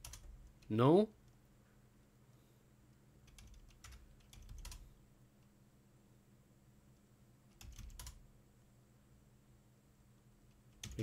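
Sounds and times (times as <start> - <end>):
keyboard keys clicking: 0.0 - 0.7, 3.2 - 4.8, 7.5 - 8.2, 10.6 - 11.0.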